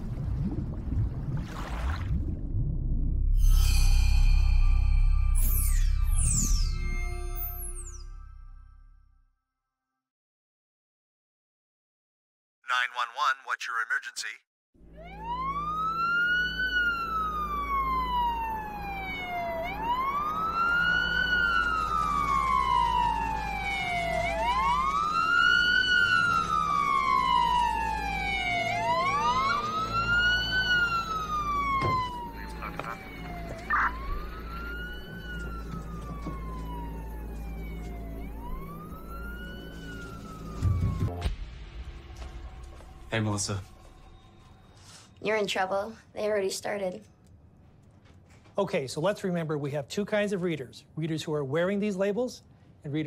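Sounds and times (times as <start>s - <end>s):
police siren wailing: 14.8s - 41.3s.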